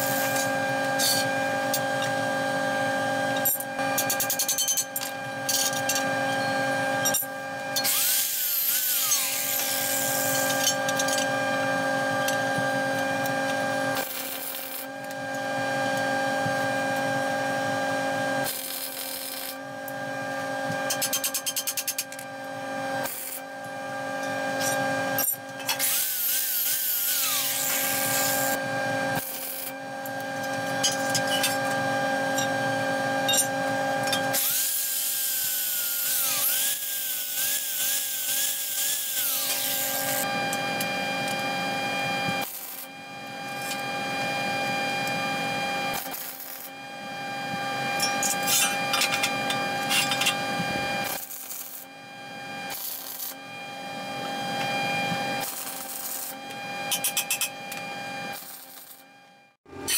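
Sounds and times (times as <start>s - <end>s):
welding arc crackling: 14.0s - 14.9s, 18.4s - 19.6s, 23.0s - 23.4s, 29.2s - 29.7s, 42.4s - 42.9s, 46.0s - 46.7s, 51.0s - 51.9s, 52.7s - 53.4s, 55.4s - 56.4s, 58.3s - 59.0s.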